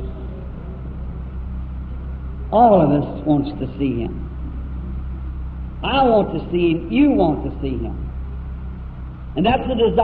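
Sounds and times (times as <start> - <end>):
tape hum and hiss: 0.0 - 10.0.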